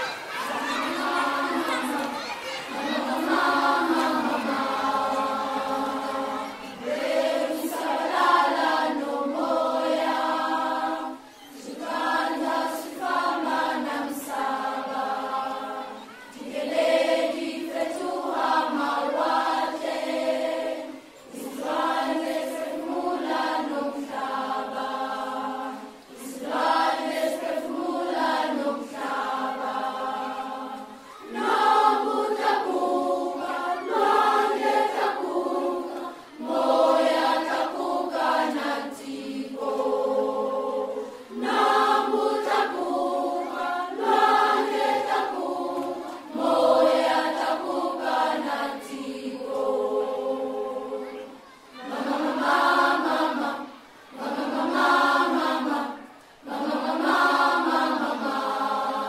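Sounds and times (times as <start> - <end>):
people singing long phrases: 0.0 - 59.0.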